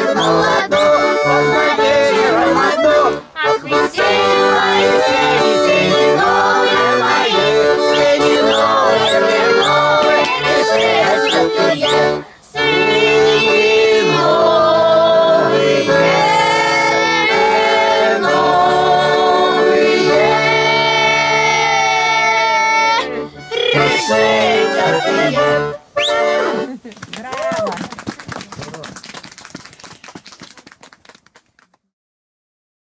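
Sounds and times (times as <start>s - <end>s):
voices talking: 0.0s - 13.6s, 22.3s - 29.0s
women and girls singing folk song: 0.0s - 26.3s
button accordion: 0.0s - 26.9s
applause: 26.9s - 31.9s.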